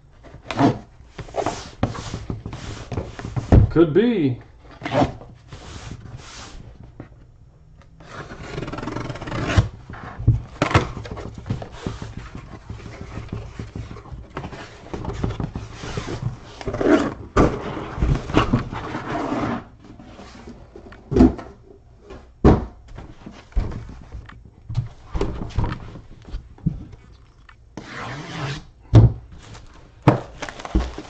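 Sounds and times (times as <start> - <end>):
cardboard rubbing and scraping: 0.2 - 3.6, 4.7 - 6.8, 8.0 - 20.8, 27.8 - 28.7
boxes knocking: 8.6 - 19.0, 22.2 - 26.6.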